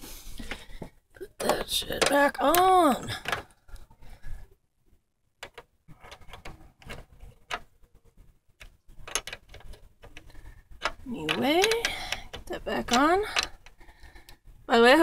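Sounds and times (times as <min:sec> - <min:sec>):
wrench clicking on metal bolt: 0:09.1 - 0:13.7.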